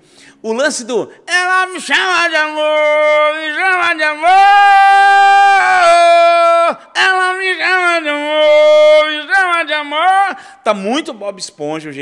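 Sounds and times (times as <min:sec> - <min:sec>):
man singing unaccompanied: 0:01.3 - 0:10.4.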